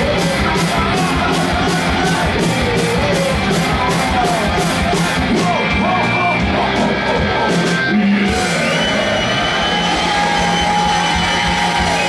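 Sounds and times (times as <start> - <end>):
drum kit: 0.0 - 12.0
electric guitar: 0.0 - 12.0.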